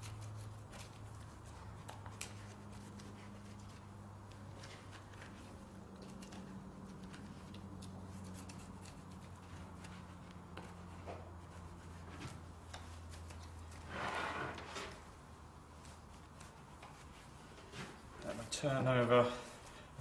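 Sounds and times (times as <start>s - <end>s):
rush of scraping noise: 13.7s - 15.1s.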